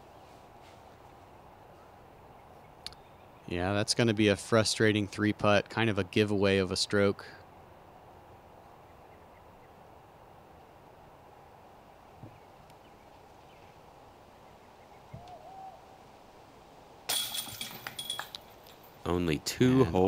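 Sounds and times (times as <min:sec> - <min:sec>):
faint bird call: 0:14.5 - 0:16.0
disc hitting metal chains: 0:17.1 - 0:19.0.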